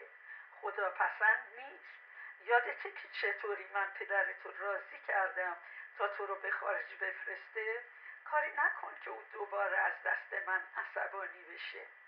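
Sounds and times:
voice talking over telephone: 0.6 - 11.9.

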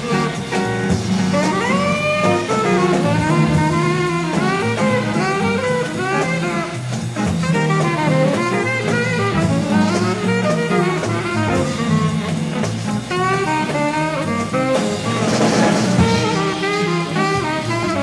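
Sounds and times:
drums: 0.0 - 18.0
tenor saxophone melody: 0.0 - 18.0
walking bass: 0.0 - 18.0.

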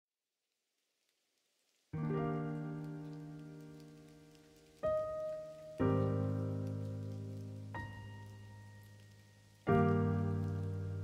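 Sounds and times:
slow piano music: 2.0 - 11.0.

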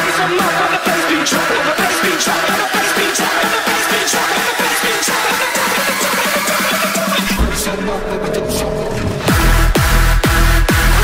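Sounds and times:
deep sustained bass: 7.3 - 11.0.

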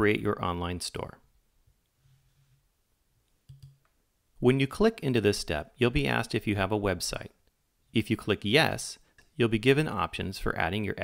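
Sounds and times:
computer mouse double click: 3.5 - 3.9.

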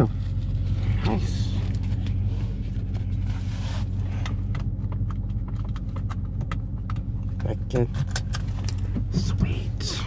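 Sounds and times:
car engine idling: 0.0 - 10.0
seatbelt clicks and taps: 4.2 - 9.6.

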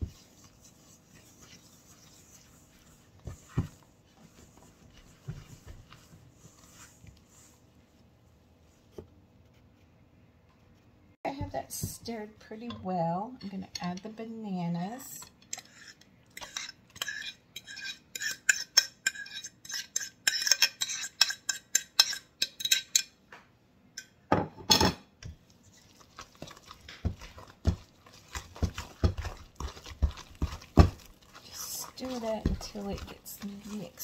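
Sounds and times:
utensil scraping against bowl: 0.0 - 7.6, 15.1 - 23.0, 25.6 - 34.0
wooden spoon stirring batter: 0.0 - 23.0, 25.2 - 34.0.

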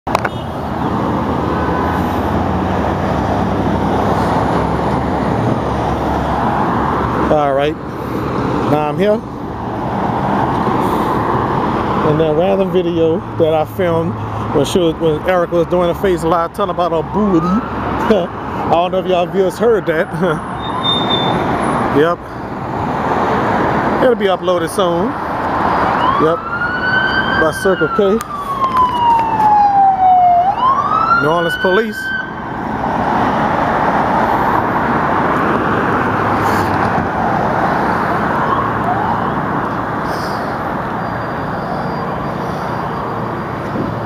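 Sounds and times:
cars passing: 0.1 - 44.0.

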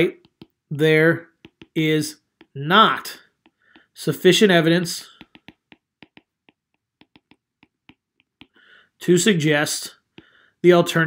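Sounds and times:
stylus tapping on glass screen: 0.2 - 0.7, 1.3 - 2.6, 3.3 - 4.0, 5.0 - 8.7.

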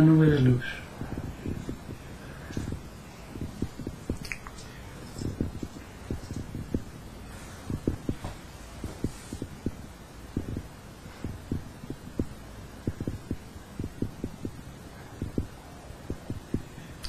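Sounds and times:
faint steady background noise: 0.0 - 17.0
soft low thumps: 0.8 - 4.4, 5.2 - 16.8.

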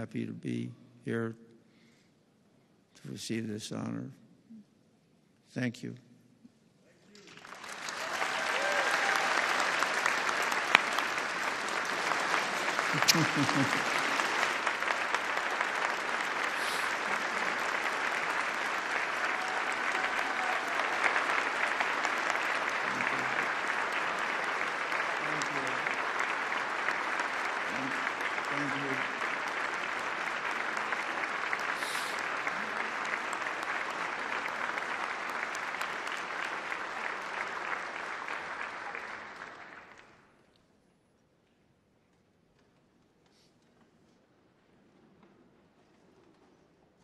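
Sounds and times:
large audience applauding: 7.2 - 40.5.

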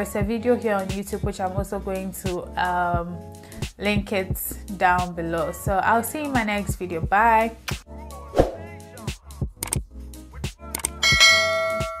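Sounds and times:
background music with steady beat: 0.0 - 12.0
quick clicks: 10.7 - 11.0
bright bell ding: 11.0 - 12.0.

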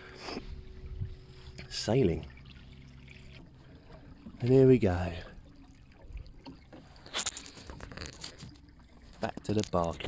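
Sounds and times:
water lapping along boat hull: 0.0 - 10.0.

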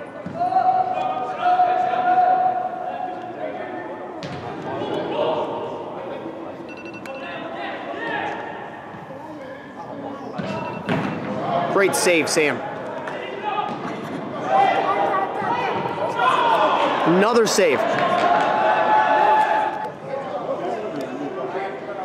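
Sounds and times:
voices calling out in a hall: 0.0 - 22.0.

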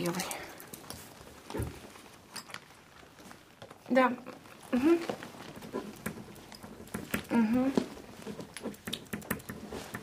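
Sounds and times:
small objects clicking and tapping: 5.0 - 10.0.

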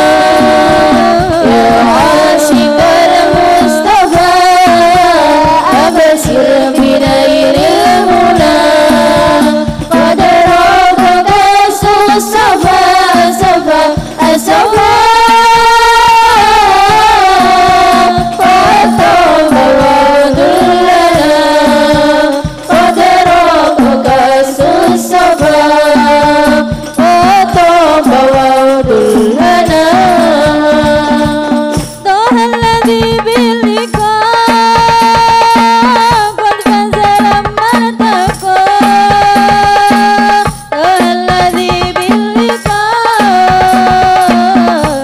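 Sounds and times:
frame drums beating: 0.0 - 45.0
women singing together: 0.0 - 45.0.

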